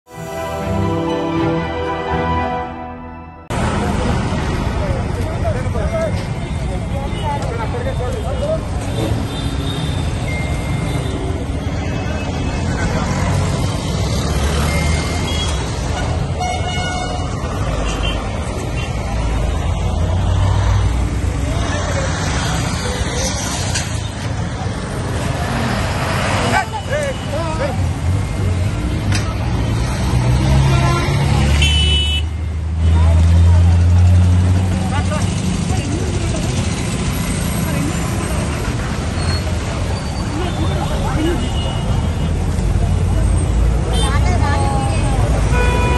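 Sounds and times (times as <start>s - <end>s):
people's voices: 3.5s - 9.4s, 17.2s - 31.8s, 32.7s - 45.9s
vehicle engines running: 3.5s - 45.9s
car horns honking: 15.2s - 18.9s, 30.7s - 32.3s, 45.4s - 45.9s.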